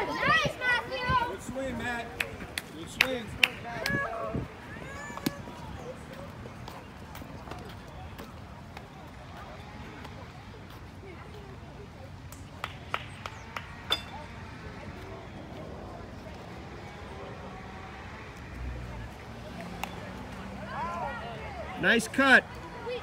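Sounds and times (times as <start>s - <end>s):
chatter of spectators: 0.0s - 23.0s.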